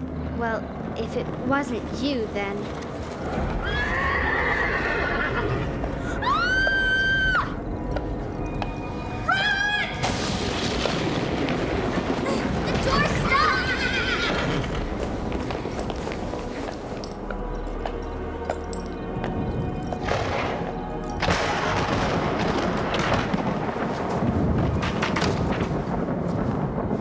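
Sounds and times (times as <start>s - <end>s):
dramatic film score: 0.0s - 27.0s
horse whinnying: 3.5s - 7.6s, 13.7s - 14.8s.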